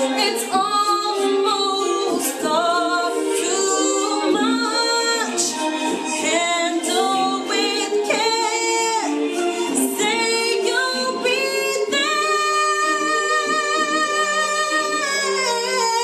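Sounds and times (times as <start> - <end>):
woman singing a pop ballad: 0.0 - 16.0.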